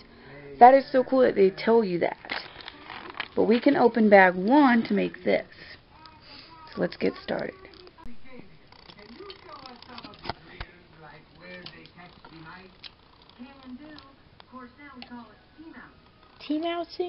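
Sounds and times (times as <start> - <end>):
tv speech: 0.2 - 17.0.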